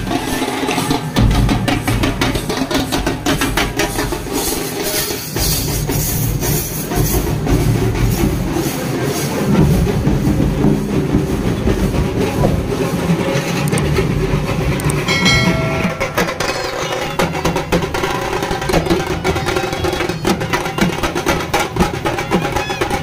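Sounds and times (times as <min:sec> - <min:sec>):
procession music with drumming: 0:15.0 - 0:23.0
brief held tone: 0:15.1 - 0:17.3.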